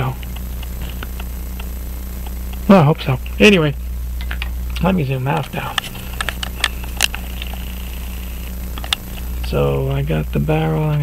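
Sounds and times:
low steady hum: 0.0 - 11.0
camera zoom motor whining: 5.8 - 9.4.

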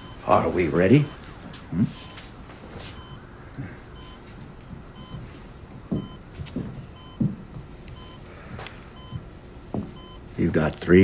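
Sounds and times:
heart monitor beeping: 0.0 - 11.0
low irregular thuds: 4.3 - 7.8.

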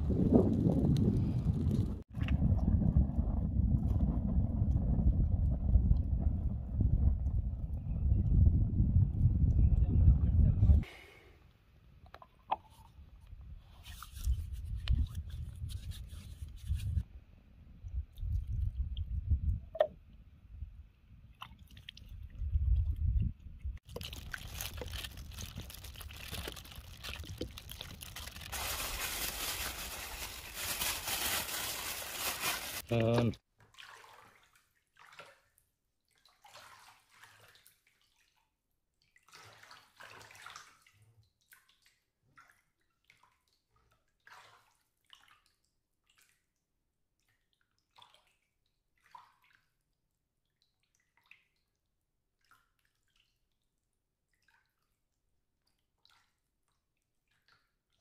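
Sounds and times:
wind rumble on microphone: 0.0 - 10.8, 13.2 - 21.3, 22.0 - 23.8
water pouring and splashing: 23.8 - 35.4, 36.2 - 38.4, 39.2 - 43.6
small handling sounds: 23.9 - 33.3.

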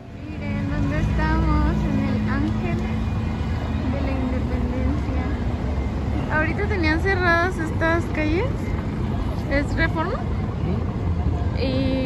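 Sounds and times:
traffic engine rumble: 0.0 - 12.0
people talking: 0.2 - 3.0, 3.8 - 5.5, 6.3 - 12.0.

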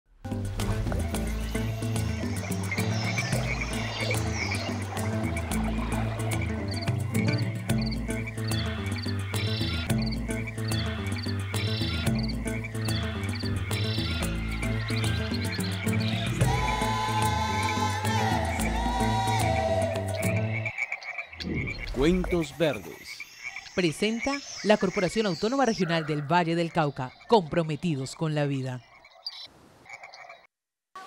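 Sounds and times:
music with low bass line: 0.2 - 17.1
frog calls: 1.0 - 30.5.

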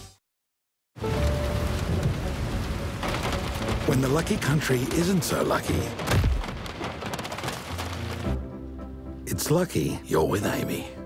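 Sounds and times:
thunder rumbling: 1.0 - 8.4
heavy rain beating down: 1.0 - 8.9.

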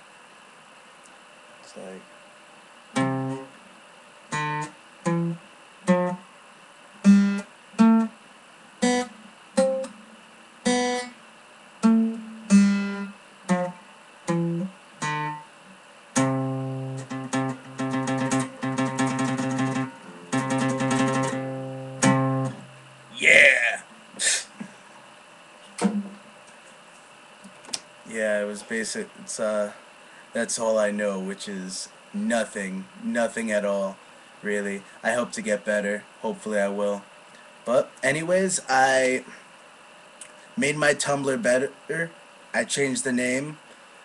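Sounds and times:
guitar picked chords and notes: 3.0 - 3.5, 4.3 - 6.2, 7.0 - 8.2, 8.8 - 11.2, 11.8 - 15.5, 16.2 - 23.2.

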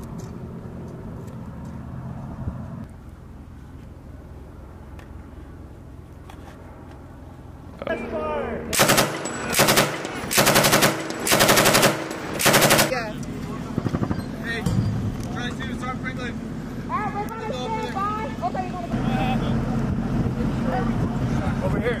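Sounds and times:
voices: 7.7 - 10.3, 12.3 - 22.0
machine gun bursts: 8.8 - 13.1.

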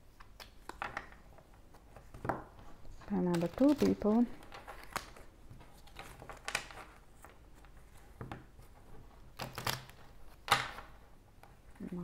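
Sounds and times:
cards clicking while shuffled: 0.2 - 12.0
cards slapping: 3.2 - 7.4.

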